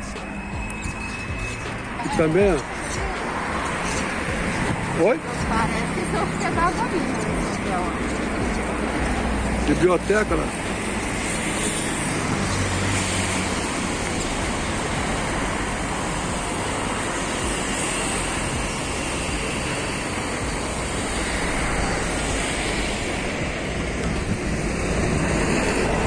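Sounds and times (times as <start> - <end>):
street traffic hum: 0.0 - 26.0
wind on microphone: 10.5 - 26.0.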